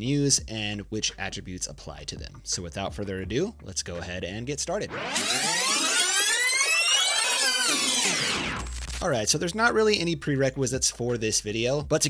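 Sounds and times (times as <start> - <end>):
synthesized tones sweeping upward: 4.8 - 8.8.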